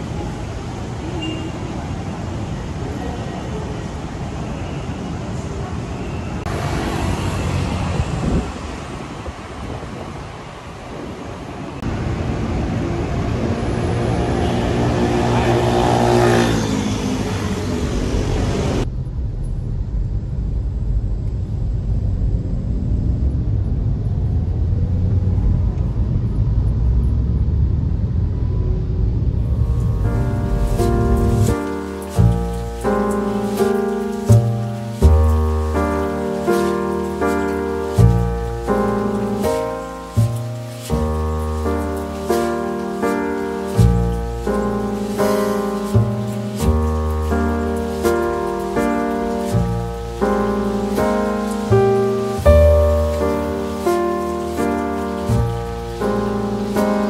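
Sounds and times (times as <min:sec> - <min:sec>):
city street traffic: 0:00.0 - 0:57.0
vehicle engine accelerating past: 0:12.2 - 0:18.9, 0:22.2 - 0:57.0
car interior rumble: 0:29.1 - 0:57.0.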